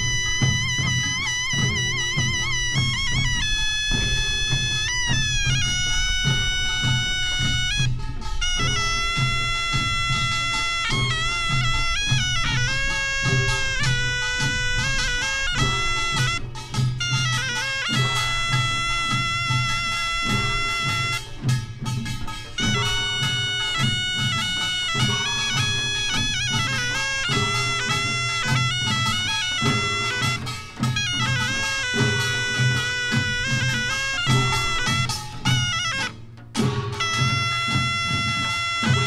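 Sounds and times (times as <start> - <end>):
barrel drums beating: 0.0 - 39.0
reedy shawm melody: 0.0 - 39.0.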